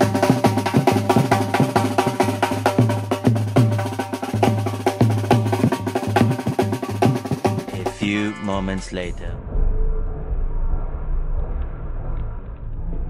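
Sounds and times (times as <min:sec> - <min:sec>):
sharp percussion strokes: 0:00.0 - 0:09.2
bass drum beats: 0:00.0 - 0:09.8
steady low tone: 0:07.7 - 0:13.0.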